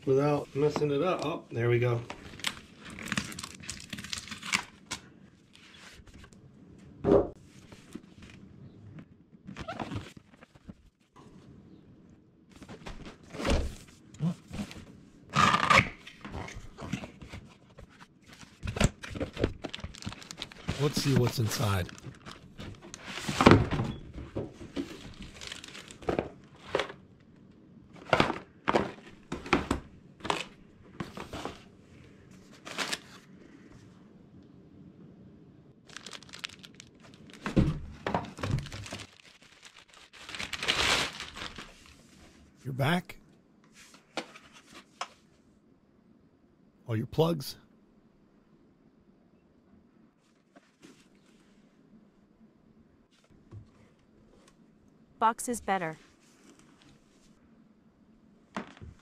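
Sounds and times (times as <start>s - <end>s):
cardboard and plastic wrap crinkling: 2.0s - 6.2s, 16.9s - 23.7s, 24.5s - 27.0s, 35.8s - 42.2s.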